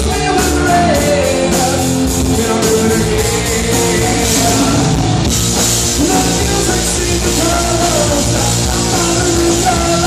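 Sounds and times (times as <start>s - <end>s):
drum kit: 0.0s - 10.0s
electric guitars: 0.0s - 10.0s.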